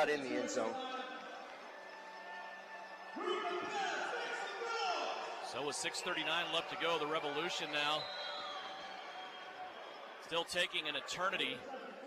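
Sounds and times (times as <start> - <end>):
indoor arena background hum: 0.0 - 12.0.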